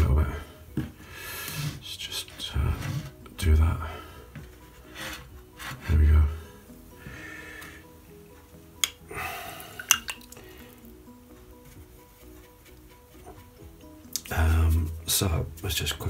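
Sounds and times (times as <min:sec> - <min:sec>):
background music: 0:00.0 - 0:16.0
brush clinking on jar: 0:09.8 - 0:10.4.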